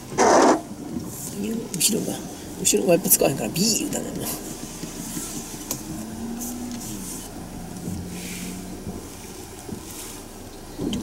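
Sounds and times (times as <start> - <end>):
car engine running at low revs: 0.0 - 11.0.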